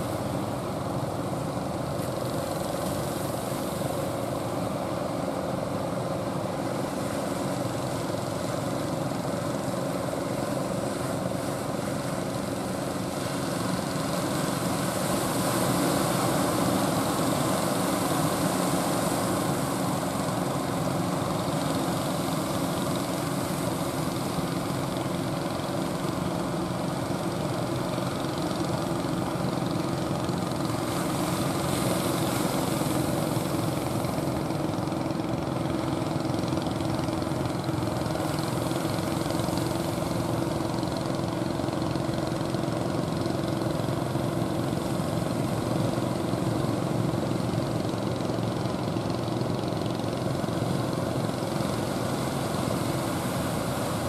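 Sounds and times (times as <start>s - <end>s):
boat engines droning: 0.0s - 54.0s.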